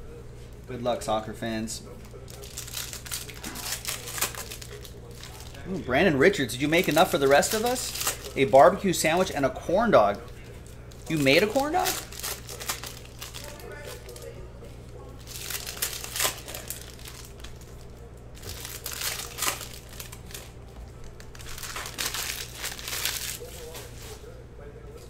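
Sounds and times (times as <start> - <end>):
foil wrapper crinkling: 2.1 - 5.7, 6.5 - 9.4, 10.1 - 14.4, 15.2 - 24.2.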